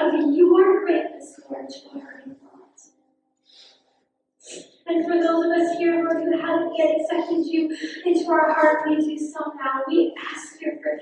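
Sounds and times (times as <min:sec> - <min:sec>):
breaths into microphone: 0:03.4 - 0:04.8.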